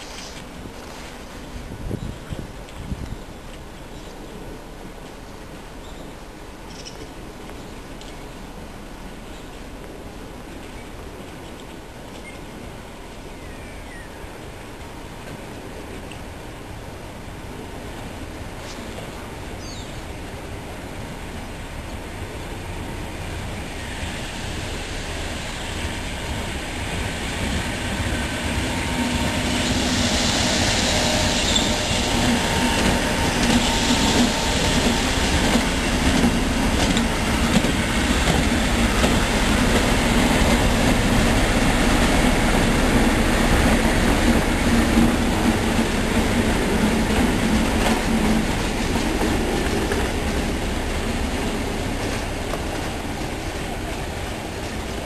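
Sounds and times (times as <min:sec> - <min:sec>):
locomotive low drone: 0:00.0 - 0:55.0
train wheel and rail noise: 0:00.0 - 0:55.0
bright hiss: 0:22.2 - 0:54.9.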